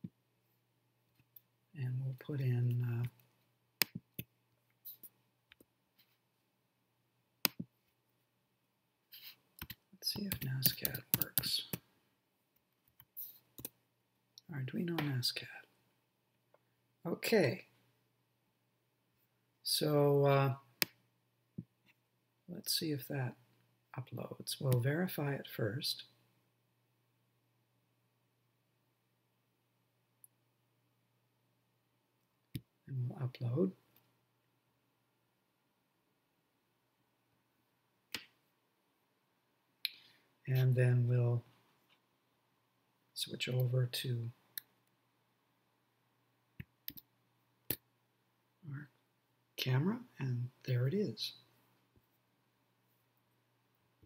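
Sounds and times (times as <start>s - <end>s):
man speaking: 10.0s - 11.8s, 14.4s - 15.7s, 17.1s - 17.7s, 32.9s - 33.8s, 40.5s - 41.5s, 49.6s - 51.4s.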